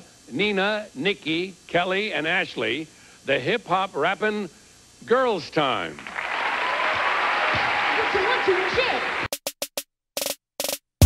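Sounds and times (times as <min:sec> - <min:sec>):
studio audience applause: 0:05.9 - 0:09.4.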